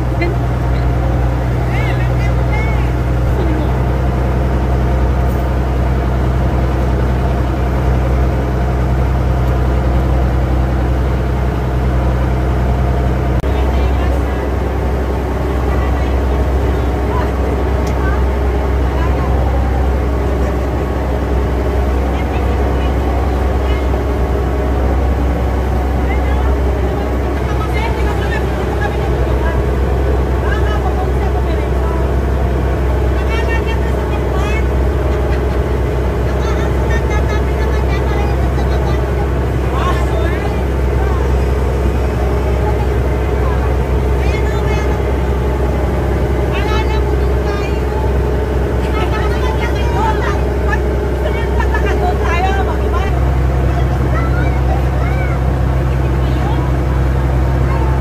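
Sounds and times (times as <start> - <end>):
boat engine humming: 0.0 - 58.0.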